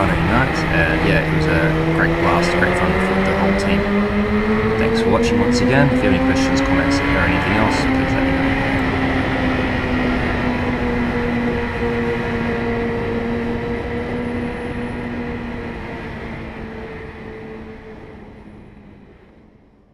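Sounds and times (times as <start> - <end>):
motorcycle engine at high revs: 0.0 - 17.6
wind rush: 0.0 - 19.4.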